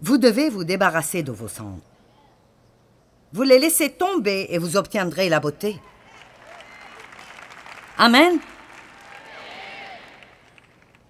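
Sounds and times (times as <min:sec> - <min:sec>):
audience applause: 0:06.0 - 0:11.0.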